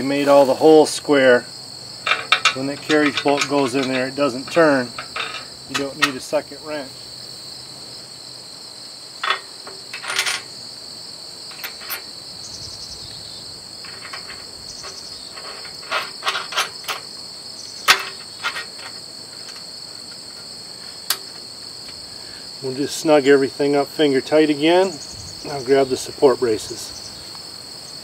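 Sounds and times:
high-pitched insect chorus: 0.0s - 28.0s
metal bolts clinking on steel: 2.0s - 6.9s, 9.2s - 10.6s, 11.5s - 12.2s, 13.8s - 22.0s.

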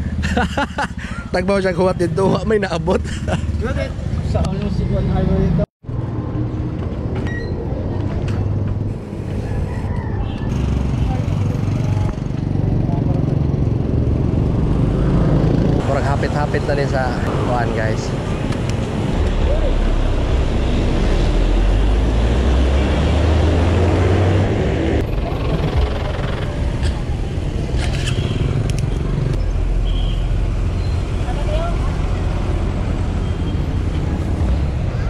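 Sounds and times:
passing road traffic: 0.0s - 35.0s.

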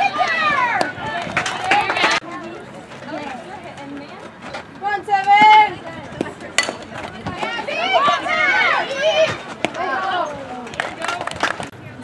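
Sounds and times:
people shouting: 7.4s - 10.7s.

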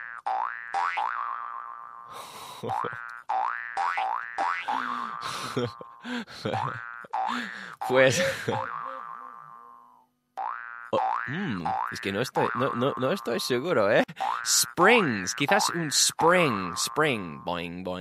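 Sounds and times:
cartoon spring boing: 0.0s - 2.0s, 2.7s - 5.1s, 8.5s - 13.0s, 14.2s - 17.0s.

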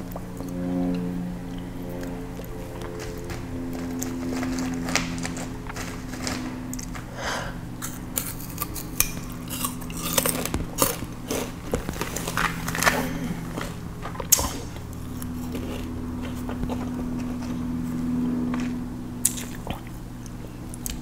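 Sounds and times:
sugarcane crunching: 1.6s - 19.8s.

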